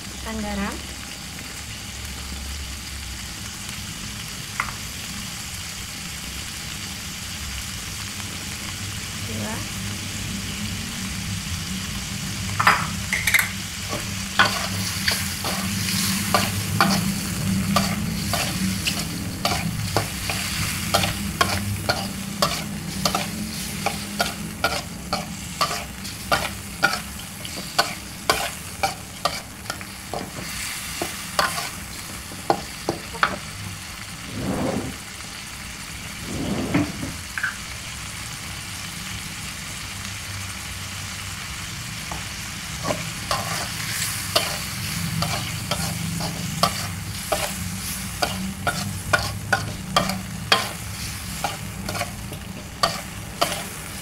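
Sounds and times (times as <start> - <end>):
food sizzling in oil: 0.0 - 54.0
metal spatula scraping wok: 13.1 - 30.3, 31.0 - 31.8, 34.2 - 35.0, 36.2 - 37.1, 42.8 - 54.0.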